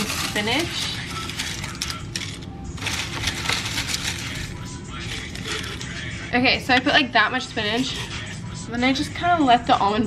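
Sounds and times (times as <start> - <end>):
frozen leaves crackling: 0.0 - 6.0.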